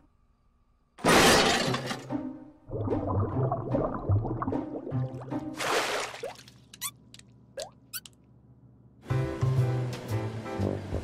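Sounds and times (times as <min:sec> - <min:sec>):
cartoon shattering crash: 0:01.0 - 0:02.1.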